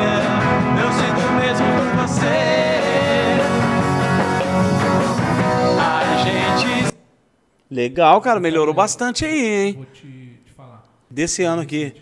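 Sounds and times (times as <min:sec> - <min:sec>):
rock band playing: 0:00.0 - 0:06.9
man singing: 0:00.0 - 0:07.0.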